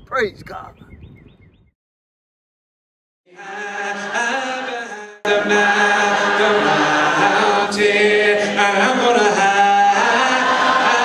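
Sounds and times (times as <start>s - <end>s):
voices singing a cappella: 3.3s - 11.0s.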